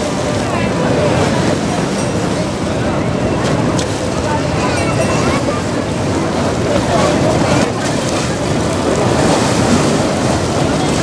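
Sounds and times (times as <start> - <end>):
river water rushing and splashing: 0.0 - 11.0
wind buffeting microphone: 0.0 - 11.0.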